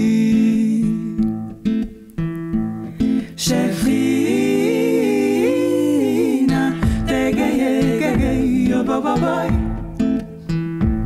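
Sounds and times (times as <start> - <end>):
women singing in harmony: 0.0 - 1.2, 3.4 - 10.2.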